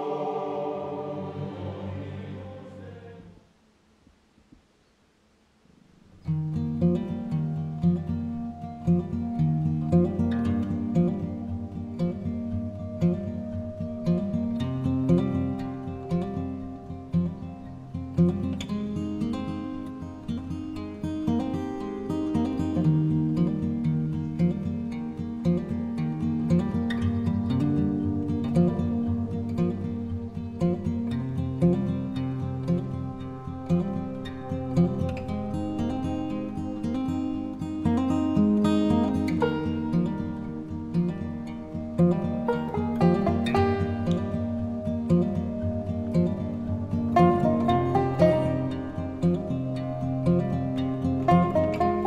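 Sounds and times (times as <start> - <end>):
acoustic guitar playing: 0.0 - 3.4, 6.2 - 52.0.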